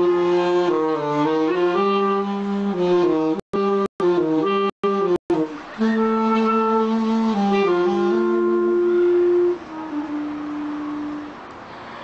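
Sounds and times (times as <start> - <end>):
clarinet and saxophone duet: 0.0 - 11.6.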